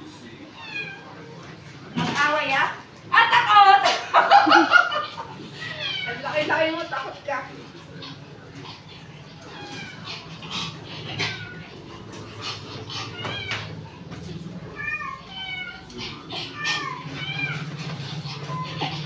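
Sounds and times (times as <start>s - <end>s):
dog whining: 9.3s - 14.0s, 14.7s - 19.0s.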